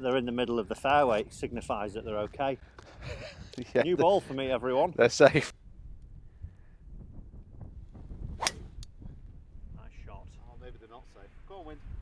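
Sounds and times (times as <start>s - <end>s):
wind on microphone: 2.8s - 4.2s, 5.6s - 12.0s
golf club striking ball: 8.4s - 9.0s.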